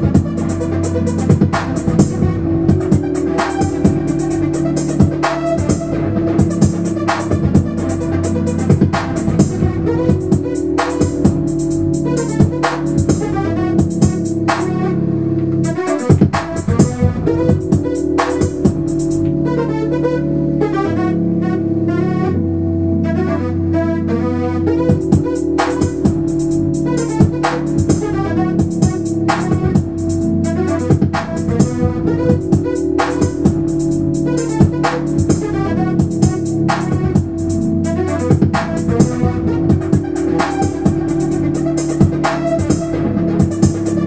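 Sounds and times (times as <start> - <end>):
programmed drum beat: 0.0 - 14.9, 15.5 - 19.5, 24.8 - 44.0
brass synth chords: 0.0 - 44.0
low bass line: 0.0 - 44.0
synthesizer keyboard: 0.0 - 44.0.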